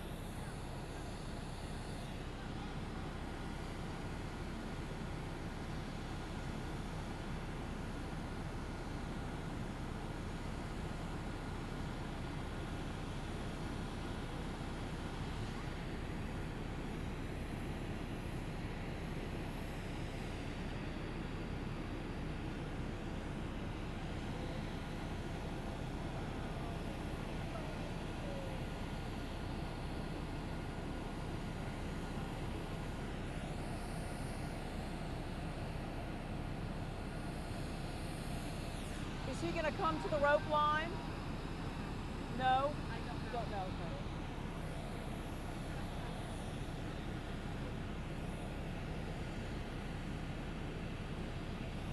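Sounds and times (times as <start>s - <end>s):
jet aircraft rumble and whine: 0.0s - 51.9s.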